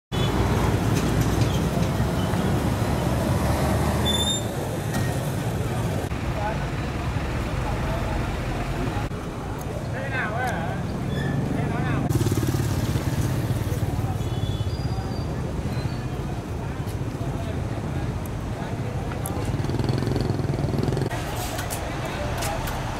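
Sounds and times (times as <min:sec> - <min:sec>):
truck engines idling: 0:00.4 - 0:10.9, 0:17.2 - 0:22.9
people talking: 0:04.5 - 0:12.2, 0:12.8 - 0:19.7, 0:20.6 - 0:22.9.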